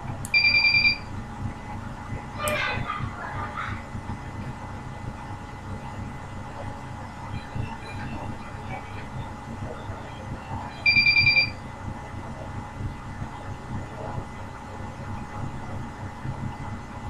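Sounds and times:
steady low rumble: 0.0s - 17.0s
rapid high electronic beeps: 0.4s - 1.1s, 7.3s - 11.6s.

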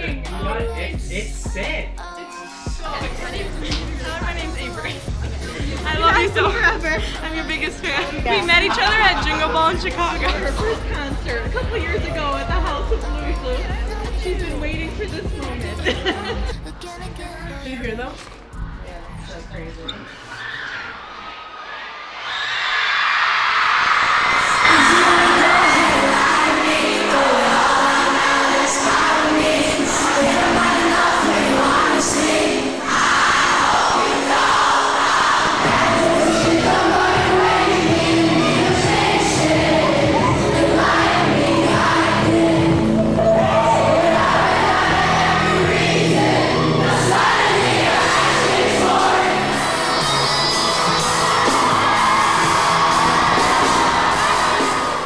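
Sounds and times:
loud pop music with singing: 0.0s - 19.8s, 23.8s - 55.0s
heavy bass: 2.7s - 17.6s, 35.6s - 55.0s
crowd screaming and cheering: 20.1s - 55.0s.

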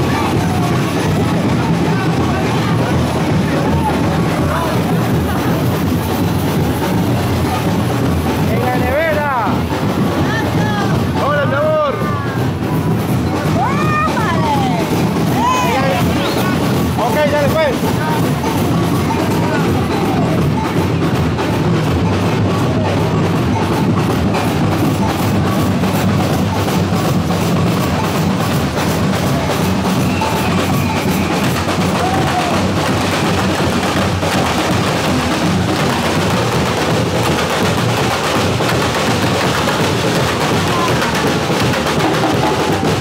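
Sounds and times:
bass drums beating: 0.0s - 43.0s
snare drums beating: 0.0s - 43.0s.

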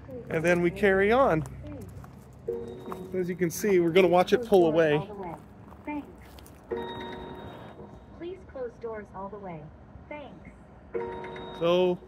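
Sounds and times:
electronic alert chime: 2.5s - 4.2s, 6.7s - 8.0s, 11.0s - 12.0s.

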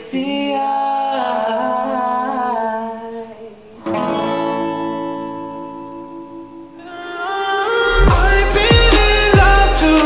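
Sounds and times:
acoustic guitars: 3.8s - 10.0s
man singing: 6.8s - 10.0s.

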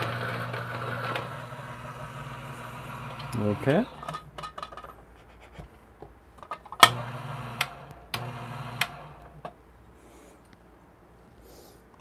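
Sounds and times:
coffee grinder motor running: 0.0s - 4.1s, 6.8s - 9.3s.

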